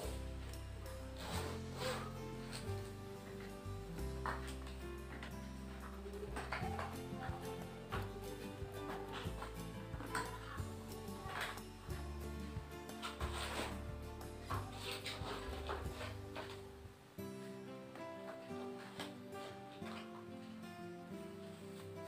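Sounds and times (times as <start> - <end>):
background music with held notes: 0.0 - 22.0.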